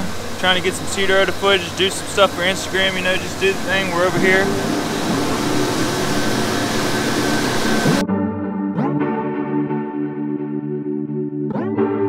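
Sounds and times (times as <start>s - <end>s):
churning wake water: 0.0s - 8.0s
low steady hum: 0.0s - 8.0s
wind on microphone: 0.0s - 8.0s.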